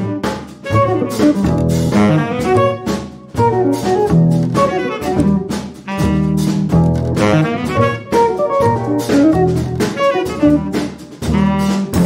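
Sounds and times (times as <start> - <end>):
plucked double bass: 0.0 - 12.0
saxophone melody: 0.0 - 12.0.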